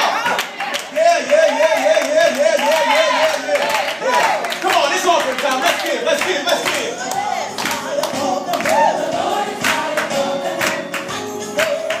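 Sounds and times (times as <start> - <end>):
worship song singing with music: 0.0 - 12.0
hand clapping on the beat: 0.3 - 8.9, 9.6 - 12.0.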